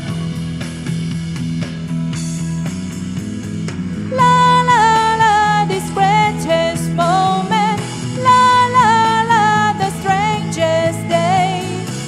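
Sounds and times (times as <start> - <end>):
instrumental pop-rock music: 0.0 - 12.0.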